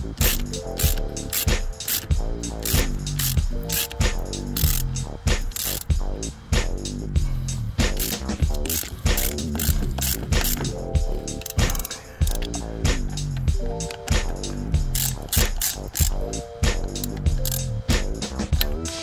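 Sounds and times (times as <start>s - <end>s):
ratchet wrench clicking: 0.0s - 6.0s, 7.8s - 19.0s
background music: 0.0s - 19.0s.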